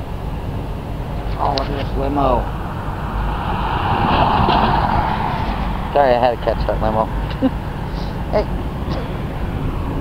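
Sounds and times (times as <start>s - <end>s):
wind rumbling on microphone: 0.0s - 10.0s
car driving past: 1.2s - 8.3s.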